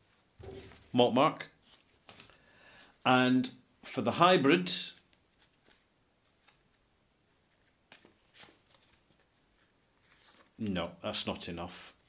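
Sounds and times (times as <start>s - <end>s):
paper cards rustling: 5.0s - 11.0s.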